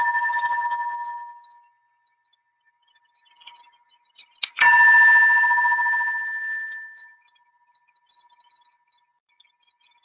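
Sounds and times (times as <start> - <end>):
bell ringing: 4.6 - 7.3.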